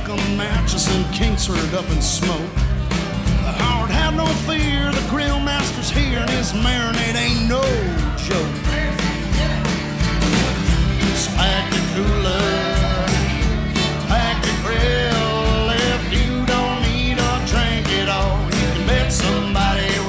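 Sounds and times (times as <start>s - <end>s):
acoustic guitar: 0.0s - 20.0s
bass: 0.0s - 20.0s
sliding bending lead melody: 0.0s - 20.0s
steady beat: 0.0s - 20.0s.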